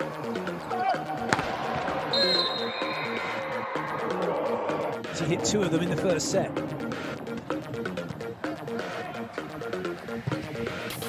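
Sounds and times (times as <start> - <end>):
electronic music with steady beat: 0.0 - 11.0
volleyball smack: 1.3 - 1.6.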